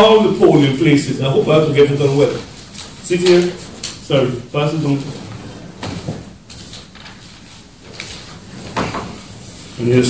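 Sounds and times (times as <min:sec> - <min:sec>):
man speaking: 0:00.0 - 0:05.3
paper rustling: 0:00.5 - 0:10.0.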